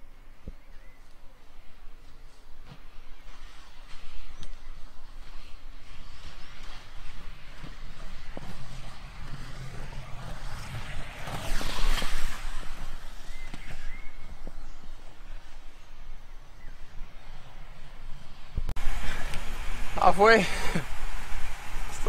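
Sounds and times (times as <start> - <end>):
skate wheels rolling on asphalt: 2.0 - 22.0.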